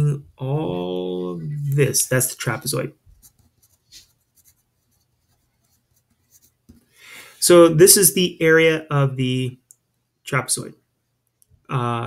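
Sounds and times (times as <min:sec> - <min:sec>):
pencil scratching on paper: 0:03.1 - 0:06.9.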